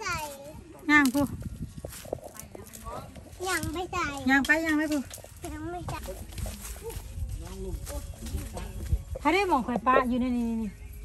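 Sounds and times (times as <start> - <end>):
footsteps on grass and leaves: 0.0 - 11.0.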